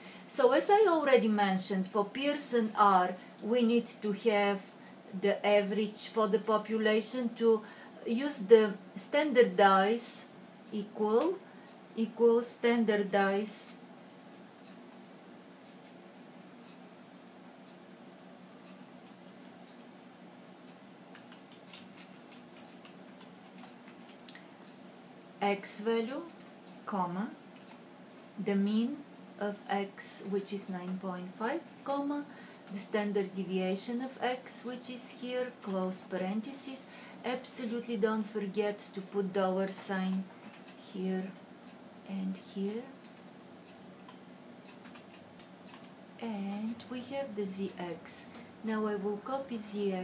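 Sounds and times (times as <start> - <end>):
low steady hum: 0.0 - 50.0
computer keyboard keystrokes: 21.1 - 24.4, 44.1 - 46.0.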